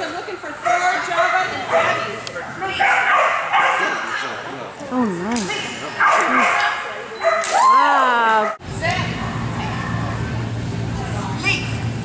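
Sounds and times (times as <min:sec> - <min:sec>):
people's voices: 0:00.0 - 0:11.9
dog yipping: 0:06.0 - 0:07.6.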